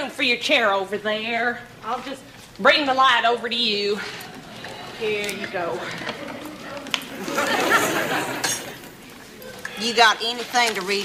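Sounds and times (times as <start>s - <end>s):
audience laughing: 5.8s - 9.0s.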